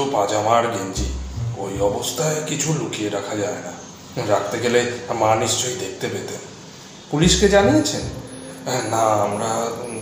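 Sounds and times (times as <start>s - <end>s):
man narrating: 0.0s - 6.4s, 7.1s - 10.0s.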